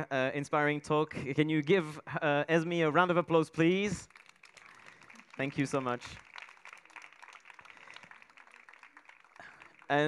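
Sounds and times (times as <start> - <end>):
faint audience applause: 4.0 - 10.0.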